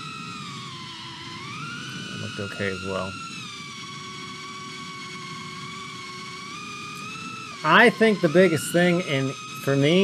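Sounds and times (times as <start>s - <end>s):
quadcopter motors whining: 0.0s - 10.0s.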